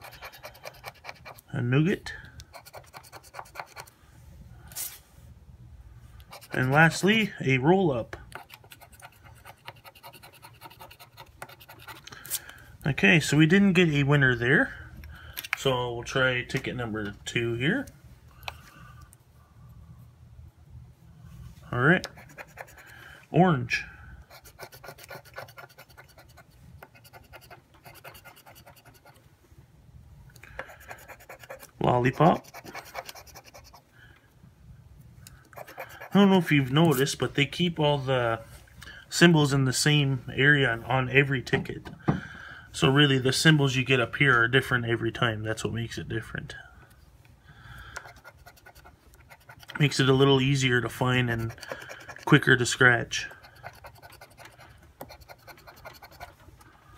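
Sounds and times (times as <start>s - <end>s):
scraper scratching lottery ticket: 0.0s - 1.5s, 2.5s - 3.9s, 6.3s - 7.1s, 8.4s - 12.2s, 22.0s - 22.9s, 24.3s - 29.2s, 30.6s - 33.8s, 35.6s - 36.4s, 48.0s - 56.4s.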